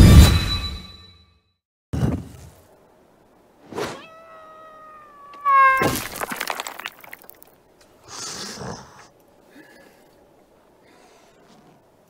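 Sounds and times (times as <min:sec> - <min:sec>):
cartoon cat yowling: 0:03.9 - 0:06.2.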